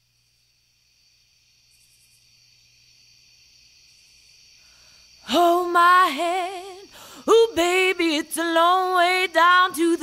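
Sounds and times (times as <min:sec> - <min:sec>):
faint high-pitched hiss: 0:00.0 - 0:10.0.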